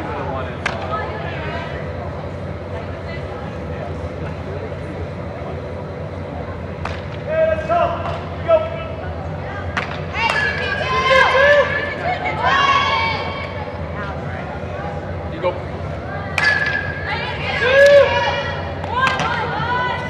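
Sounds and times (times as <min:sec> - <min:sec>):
steady background hum: 0:00.0 - 0:20.0
players shouting: 0:10.0 - 0:15.2, 0:16.0 - 0:20.0.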